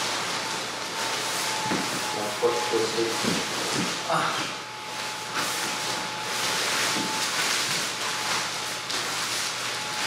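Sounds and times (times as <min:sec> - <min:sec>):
blower fan whooshing: 0:00.0 - 0:10.0.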